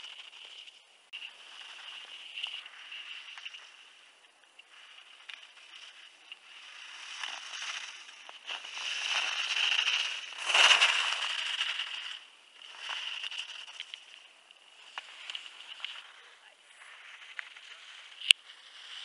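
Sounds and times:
ski edges scraping on snow: 0.0s - 19.0s.

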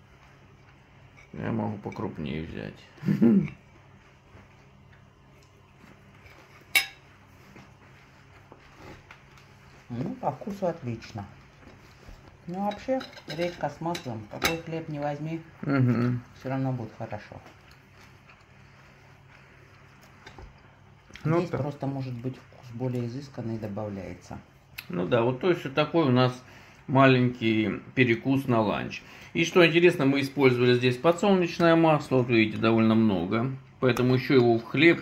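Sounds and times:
steady low hum: 0.0s - 35.0s
fork clinking on ceramic plate: 6.6s - 7.1s.

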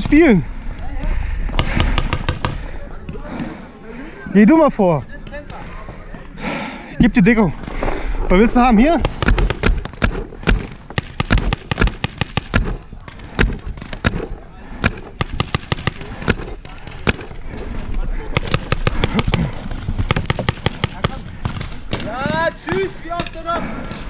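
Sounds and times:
paintball markers firing: 1.5s - 2.6s, 9.0s - 17.4s, 18.3s - 24.0s.

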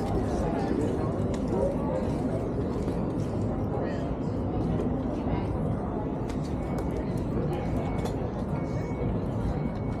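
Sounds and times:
passers-by voices: 0.0s - 10.0s.

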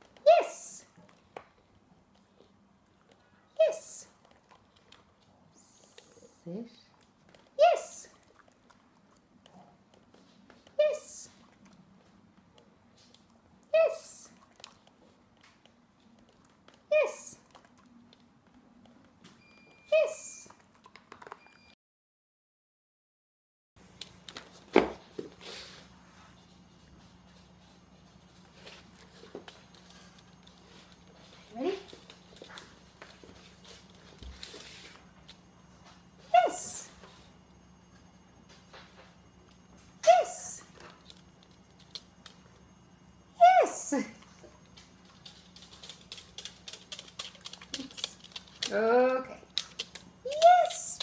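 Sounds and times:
dog's claws tapping on floor: 44.8s - 48.9s, 49.5s - 51.0s.

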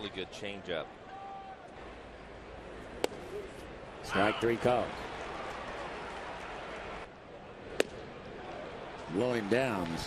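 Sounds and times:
ballpark crowd noise: 0.0s - 10.0s
ball smacking into mitt: 3.0s - 3.2s.

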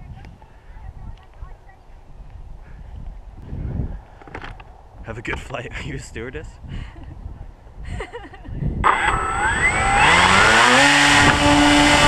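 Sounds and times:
wind rumble on microphone: 0.0s - 12.0s
microphone handling noise: 2.2s - 5.8s.

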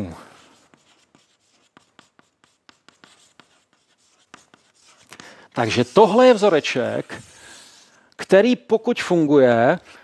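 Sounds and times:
chalk tapping and scraping: 0.1s - 8.0s.

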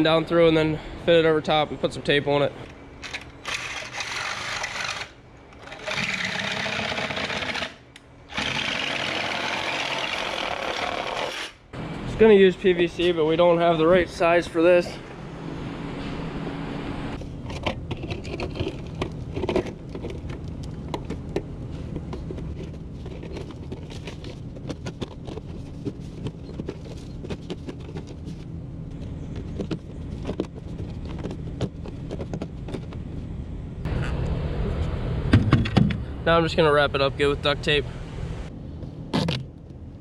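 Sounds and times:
engine humming: 0.0s - 40.0s.

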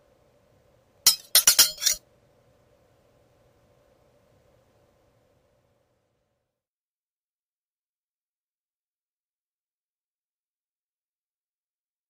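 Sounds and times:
sharp bright clinking impacts: 1.1s - 2.0s.

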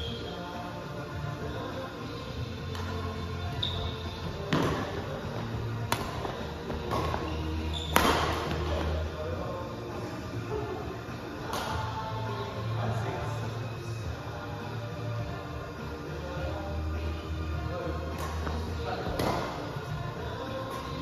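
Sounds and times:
music: 0.0s - 21.0s
racquets hitting shuttlecock: 5.8s - 8.8s.

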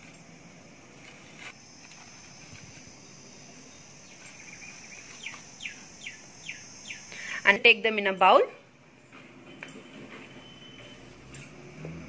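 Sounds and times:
high insect-like drone: 1.0s - 7.8s
bird chirping: 3.0s - 7.3s.

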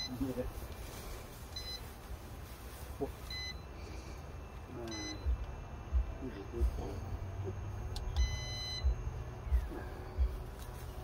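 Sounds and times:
low steady rumble: 0.0s - 11.0s
short high electronic beeps: 8.2s - 9.0s.

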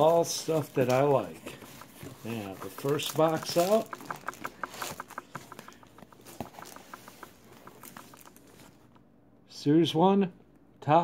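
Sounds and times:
clicks and taps handling boxes: 0.5s - 8.7s.

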